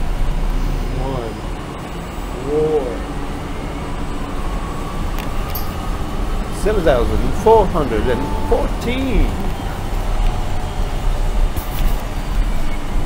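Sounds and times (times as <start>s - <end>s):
bus engine rumble: 0.0s - 13.0s.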